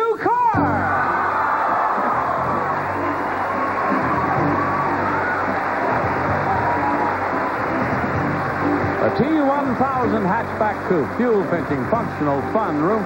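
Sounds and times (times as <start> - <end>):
studio audience cheering: 0.2 - 13.0
game show music cue: 0.5 - 13.0.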